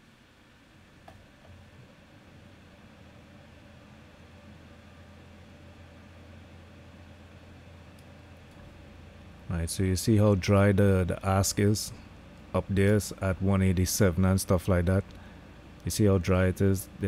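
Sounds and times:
background hiss: 0.0 - 17.0
low hum: 0.0 - 17.0.

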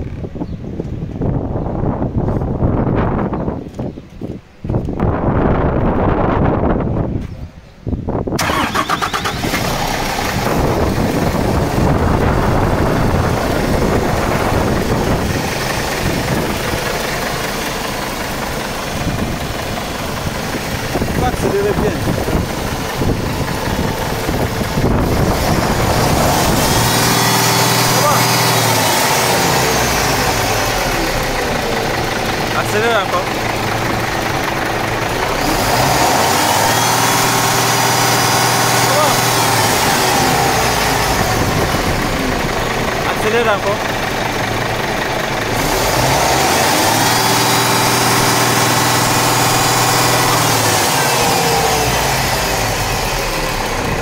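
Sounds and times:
diesel engine cranking and idling: 8.0 - 54.0.

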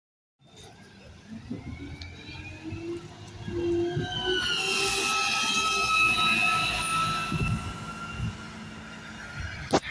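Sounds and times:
bus high-pitched squeal: 2.4 - 9.9.

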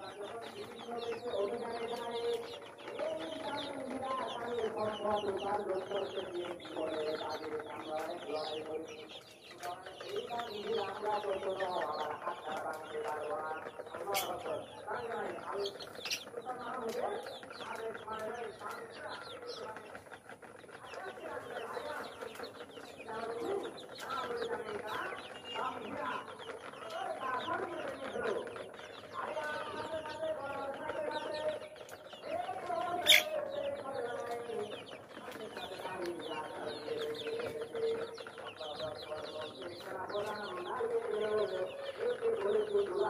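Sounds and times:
chicks peeping: 0.0 - 43.0
hens clucking: 0.0 - 43.0.

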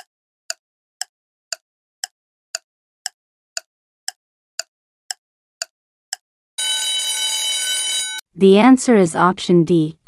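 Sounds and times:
clock ticking: 0.0 - 6.2
ringing bell: 6.6 - 8.2.

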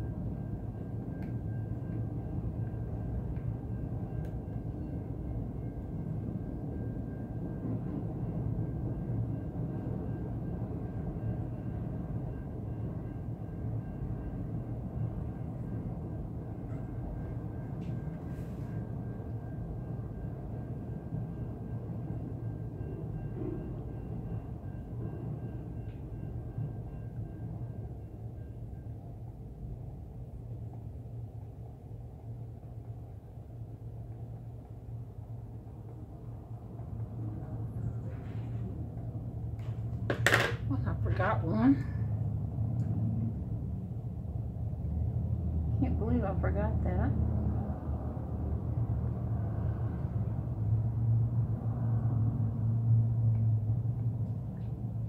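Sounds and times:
train rumbling past: 0.0 - 55.0.

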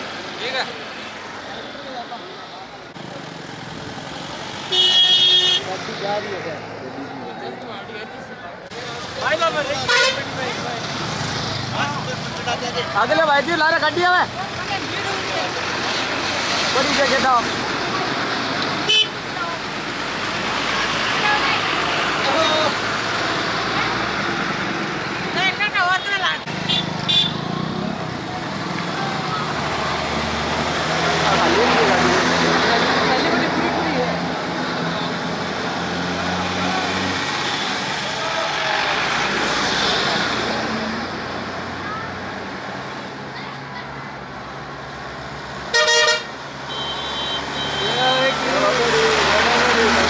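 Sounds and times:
bus engines driving past: 0.0 - 50.0
bus horns tooting: 4.6 - 5.7, 9.7 - 10.4, 18.8 - 19.2, 25.8 - 27.8, 45.7 - 48.3
crowd voices: 5.4 - 44.4.

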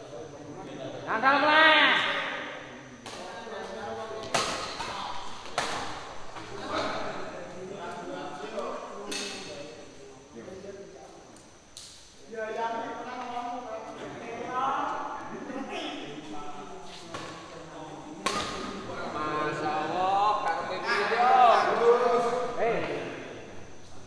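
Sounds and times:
rackets striking shuttlecock: 4.2 - 6.0, 9.1 - 9.5, 18.2 - 18.8
voices calling: 12.6 - 23.9.

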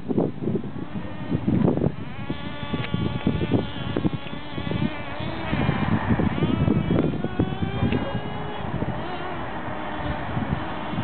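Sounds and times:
rc car motors whining: 0.6 - 11.0.

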